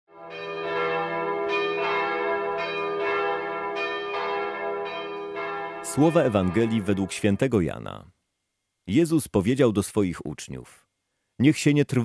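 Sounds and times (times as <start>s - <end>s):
bells chiming: 0.2s - 7.6s.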